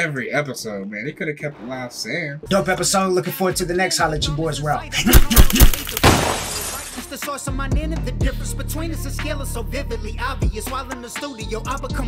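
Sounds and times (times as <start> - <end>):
glass shattering: 5.1 - 7.2.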